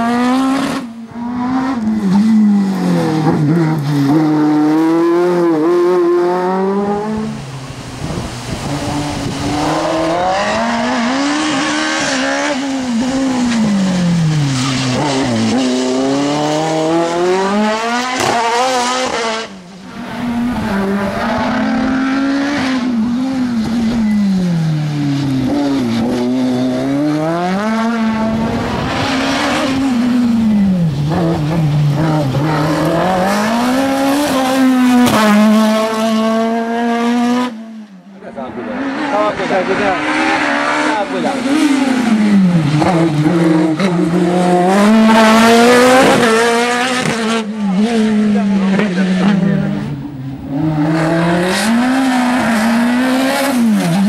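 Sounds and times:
race car engine revving: 0.0 - 54.0.

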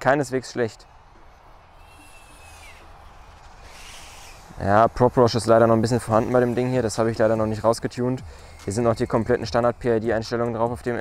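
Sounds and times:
distant drone humming: 0.0 - 11.0
thin high tone: 1.6 - 10.7.

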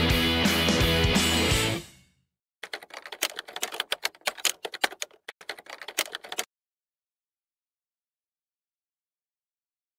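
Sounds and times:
rapid irregular clicking: 2.6 - 6.5.

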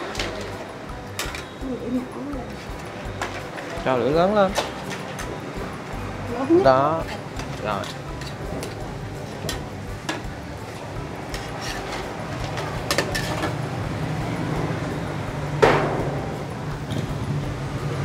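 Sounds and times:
metal spatula scraping a wok: 7.0 - 9.7, 11.2 - 13.7.

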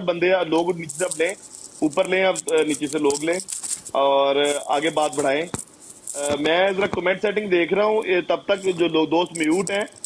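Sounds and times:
person speaking over call: 6.2 - 10.0.

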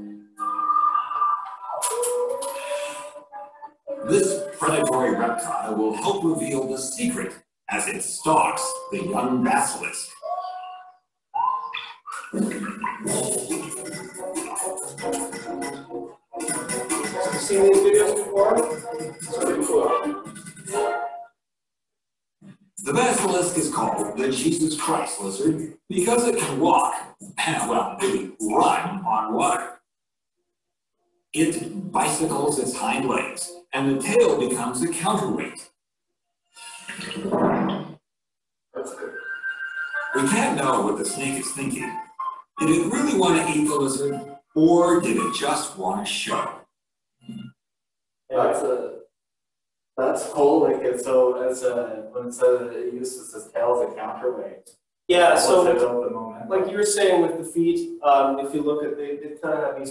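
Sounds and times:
held pitched tones: 0.0 - 21.2, 22.8 - 29.6, 38.8 - 46.5.

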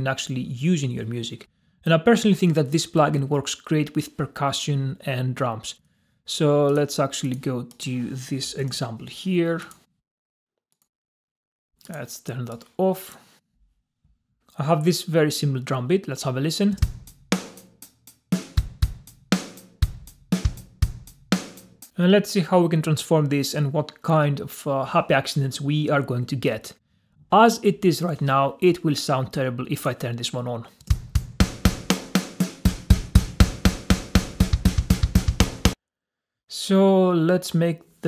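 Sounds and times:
drum machine beat: 16.8 - 22.0, 30.9 - 35.8.

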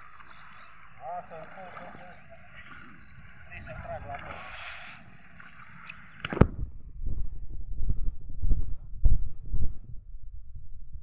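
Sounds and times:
wind rumbling on microphone: 0.0 - 11.0.

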